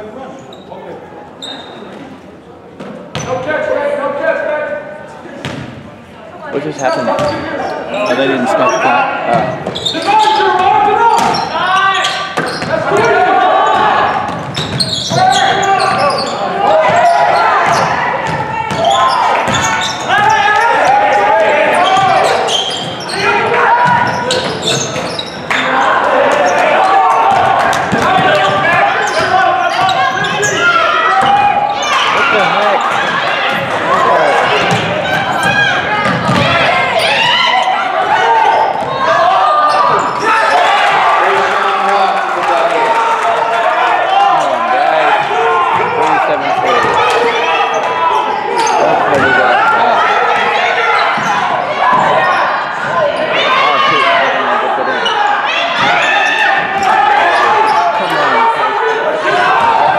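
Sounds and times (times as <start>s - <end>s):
people shouting and talking: 0.0s - 59.9s.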